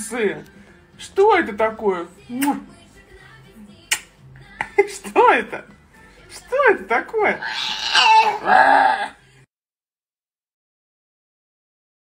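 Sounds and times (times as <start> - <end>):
faint background music: 0.0 - 9.5
sharp click: 3.9 - 4.1.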